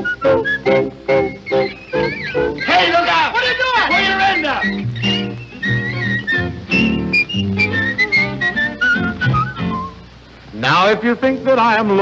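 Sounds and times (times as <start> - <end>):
orchestra playing short chords: 0.0 - 9.8
voice with sliding pitch: 2.0 - 4.9.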